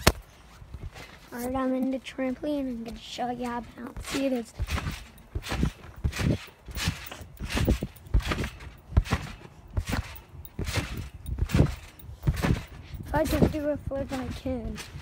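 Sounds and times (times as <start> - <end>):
trampoline mat thudding: 1.7 - 15.0.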